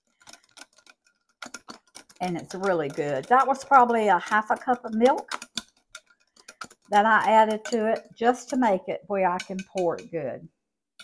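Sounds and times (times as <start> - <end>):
whisk clicking against glass bowl: 0.0 - 8.8, 9.4 - 10.1.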